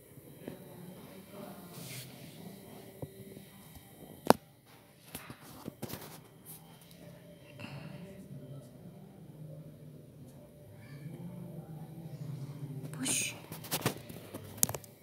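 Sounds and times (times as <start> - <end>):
faint indistinct voices: 0.0 - 15.0.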